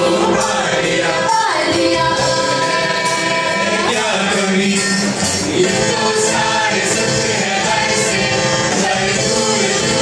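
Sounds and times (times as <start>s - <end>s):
choir singing: 0.0s - 10.0s
live band accompaniment: 0.0s - 10.0s.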